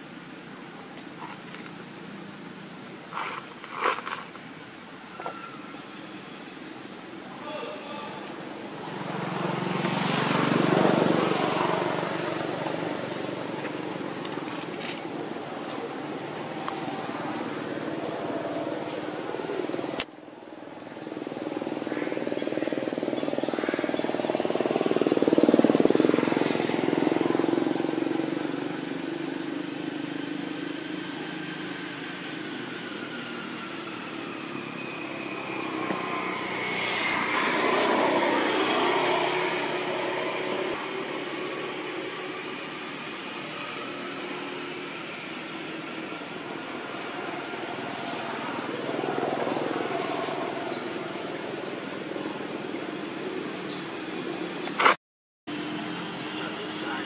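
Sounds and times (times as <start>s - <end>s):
motor engine noise: 7.9s - 57.0s.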